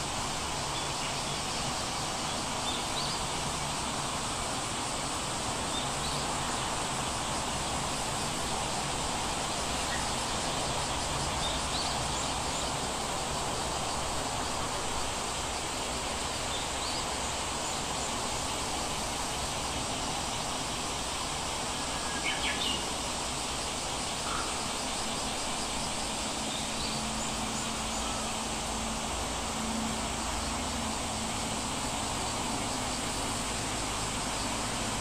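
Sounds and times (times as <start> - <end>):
steady background hiss: 0.0 - 35.0.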